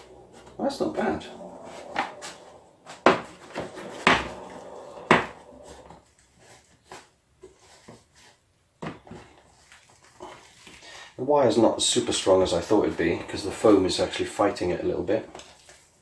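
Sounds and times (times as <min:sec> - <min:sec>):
faint rustling: 0:00.0 - 0:08.4.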